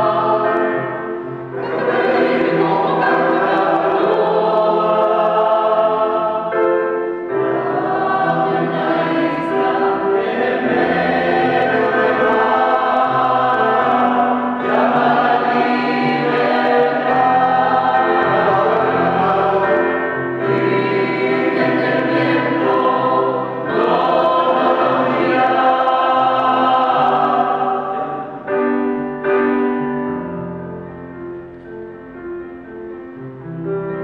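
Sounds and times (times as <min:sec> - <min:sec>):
choir singing in harmony: 0:00.0 - 0:30.6
electronic keyboard: 0:00.0 - 0:34.0.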